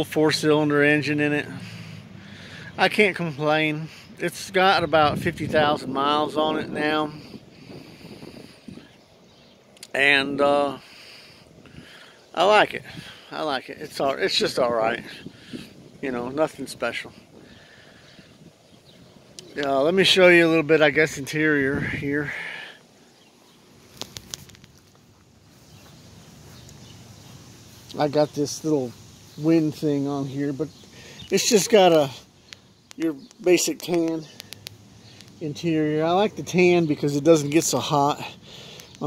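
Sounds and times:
faint outdoor background noise: 0.0 - 39.0
man speaking: 2.8 - 7.2, 12.4 - 15.3, 16.0 - 17.2, 19.5 - 22.7, 27.8 - 32.3, 35.4 - 38.3
camera handling noise: 23.9 - 25.0
short clicks: 31.9 - 35.4.

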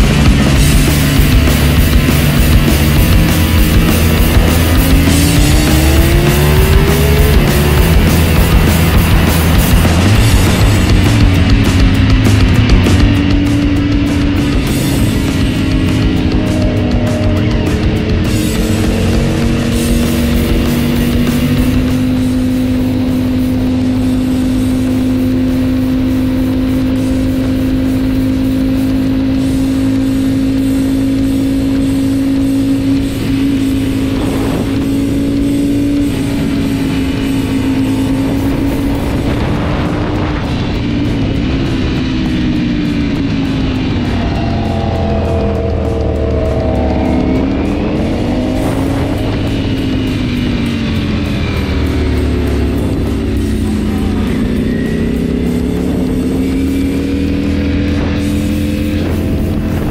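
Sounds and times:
motorcycle engine at high revs: 0.0 - 59.9
wind rush: 0.0 - 59.9.

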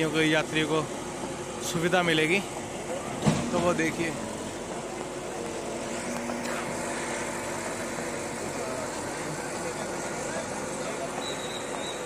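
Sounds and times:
crowd chatter: 0.0 - 12.0
diesel engine running: 0.0 - 12.0.

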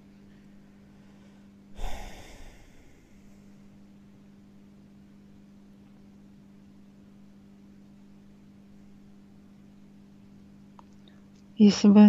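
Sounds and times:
faint low hum: 0.0 - 12.0
breath blown onto microphone: 1.8 - 3.5.

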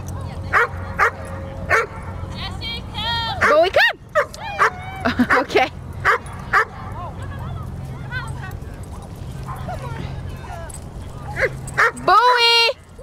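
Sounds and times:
dogs barking and yipping: 0.4 - 2.5, 3.3 - 13.0.

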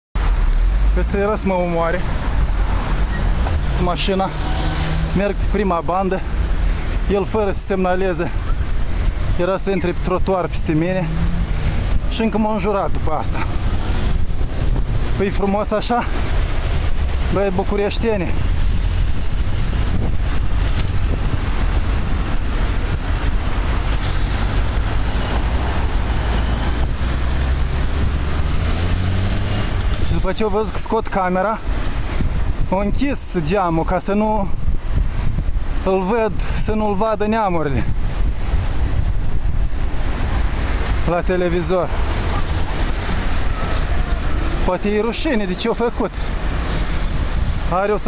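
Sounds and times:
city traffic: 0.1 - 48.0
wind rushing over microphone: 0.2 - 48.0.

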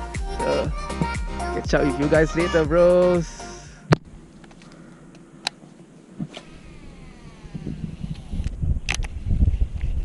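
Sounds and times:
rumbling handling noise: 3.9 - 10.0
fishing reel spool whining: 6.3 - 8.6.

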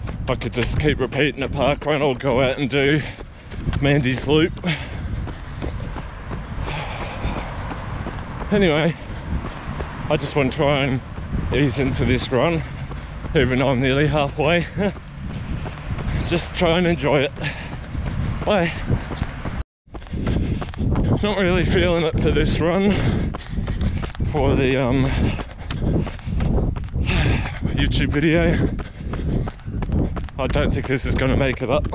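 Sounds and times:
running footsteps: 0.0 - 31.9
wind rumbling on microphone: 0.0 - 31.9.

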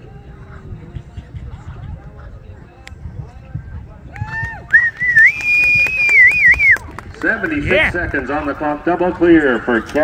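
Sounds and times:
loud long whistle: 4.7 - 6.8.

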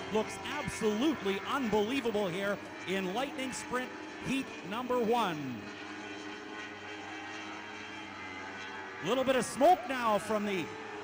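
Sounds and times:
motorcycle engines at high revs: 0.0 - 11.0.

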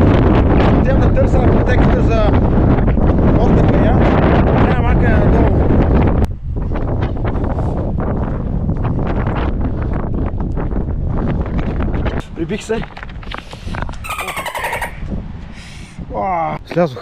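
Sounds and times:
wind buffeting microphone: 0.0 - 17.0
footsteps on stony trail: 6.8 - 14.0.

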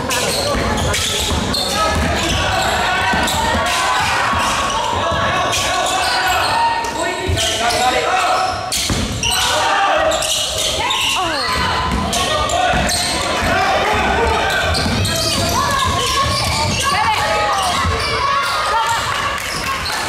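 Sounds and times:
sneakers squeaking: 0.0 - 20.0
voices echoing in a hall: 0.0 - 20.0
basketball bouncing: 0.2 - 5.4, 11.4 - 18.2.

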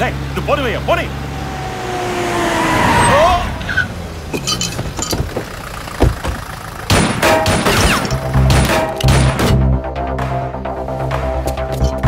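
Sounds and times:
vehicle engine rumble: 0.0 - 9.9.

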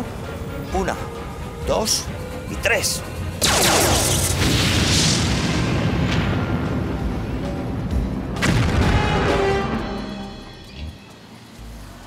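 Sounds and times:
music: 0.0 - 12.0
ray-gun blast with falling sweep: 3.4 - 6.5
explosion boom: 3.4 - 9.8.

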